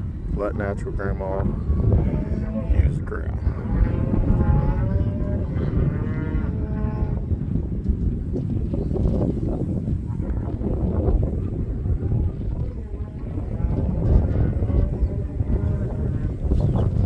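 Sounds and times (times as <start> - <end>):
wind rumble on microphone: 0.0 - 17.0
cattle mooing: 1.5 - 7.2, 12.7 - 16.5.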